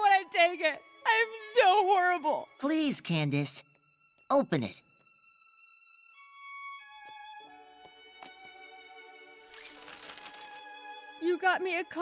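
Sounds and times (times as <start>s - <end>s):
gentle orchestral strings: 0.0s - 12.0s
wrapping paper being torn: 9.4s - 10.7s.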